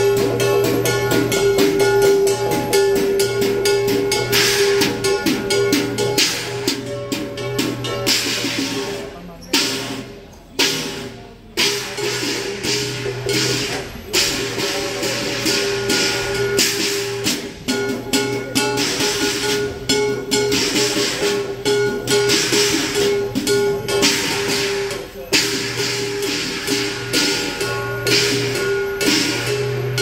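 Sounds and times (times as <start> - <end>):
crashing cymbal clashes: 0.0 - 30.0
drum beat: 0.0 - 30.0.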